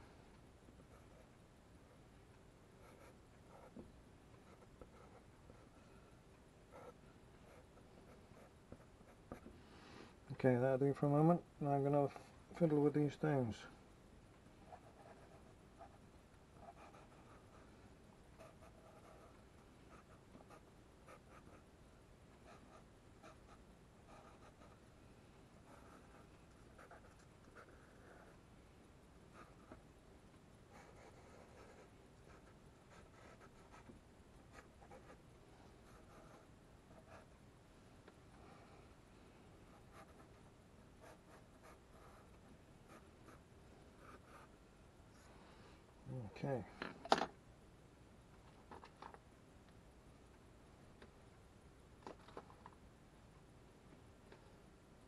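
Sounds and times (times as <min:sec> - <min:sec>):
pencil scratching on paper: 0:14.7 - 0:16.0, 0:16.6 - 0:17.6, 0:18.4 - 0:21.6, 0:22.4 - 0:24.8, 0:25.6 - 0:28.3, 0:30.7 - 0:33.9.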